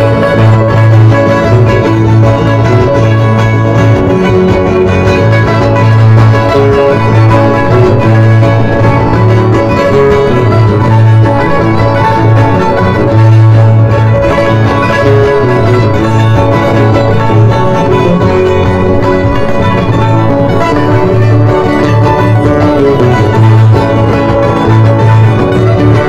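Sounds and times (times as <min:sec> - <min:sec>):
pulsing bass: 0:00.0 - 0:26.0
strummed guitars: 0:00.0 - 0:26.0
violin playing a dance tune: 0:00.0 - 0:26.0.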